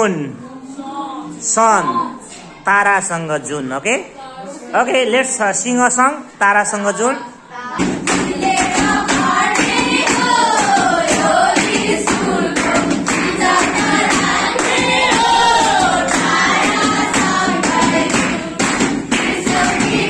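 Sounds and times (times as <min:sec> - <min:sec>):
children singing together: 0:07.2 - 0:20.0
hands clapping: 0:07.8 - 0:20.0.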